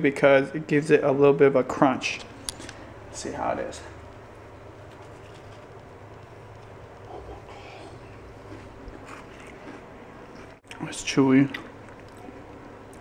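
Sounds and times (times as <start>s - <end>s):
steady low hum: 0.0s - 13.0s
person chewing crunchy cookie: 6.6s - 10.7s, 11.5s - 13.0s.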